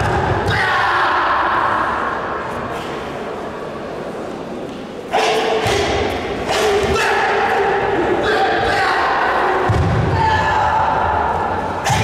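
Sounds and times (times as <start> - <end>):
loud voice calling out: 5.1 - 12.0.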